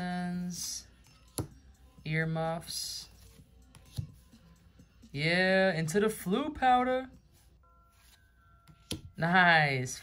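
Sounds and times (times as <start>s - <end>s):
trading cards being handled: 3.0s - 4.5s.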